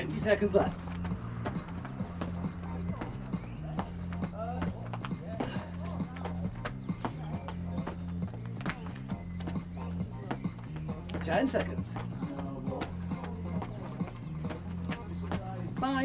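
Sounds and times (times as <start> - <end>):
background music with bass line: 0.0 - 16.0
footsteps on paving: 0.0 - 16.0.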